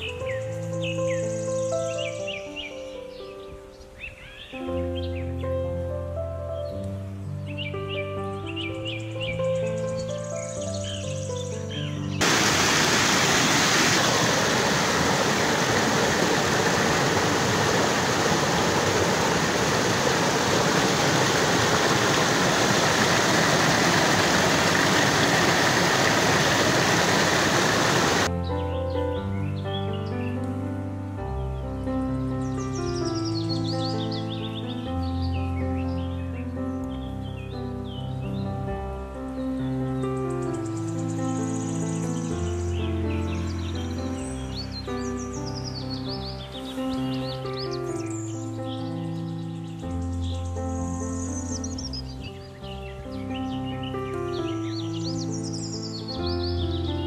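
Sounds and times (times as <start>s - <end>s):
music of slow held notes: 0.0s - 12.2s, 28.3s - 57.0s
mountain stream rushing over rocks: 12.2s - 28.3s.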